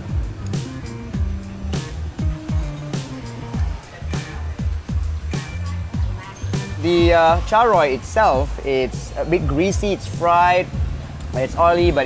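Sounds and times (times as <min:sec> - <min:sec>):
sliding deep bass notes: 0:00.0 - 0:12.0.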